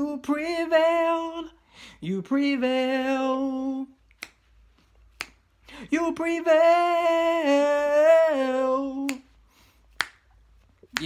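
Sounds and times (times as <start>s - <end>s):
person singing unaccompanied: 0.0s - 4.0s, 5.7s - 9.4s
finger snaps: 4.0s - 5.8s, 9.0s - 11.0s.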